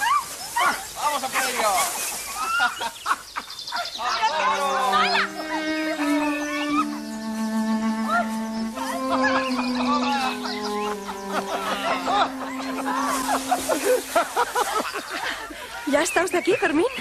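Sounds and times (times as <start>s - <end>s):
rustle of bodies in hay: 0.0s - 17.0s
people laughing and shrieking: 4.0s - 7.0s, 8.2s - 15.9s
slow soundtrack music: 4.6s - 14.6s.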